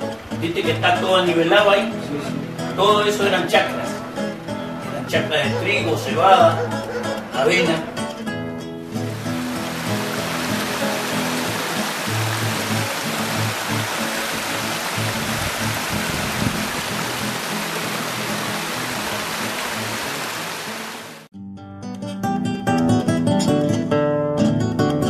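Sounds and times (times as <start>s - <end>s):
waterfall rushing: 8.8s - 21.3s.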